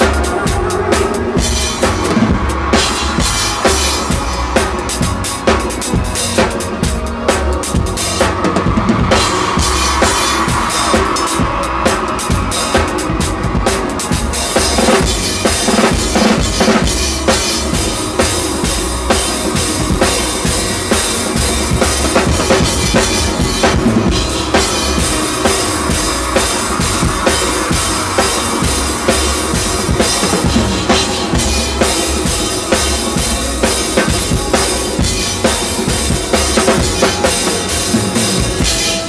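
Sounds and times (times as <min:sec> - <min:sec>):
band playing bachata music: 0:00.0 - 0:39.0
drum kit played with sticks: 0:00.0 - 0:39.0.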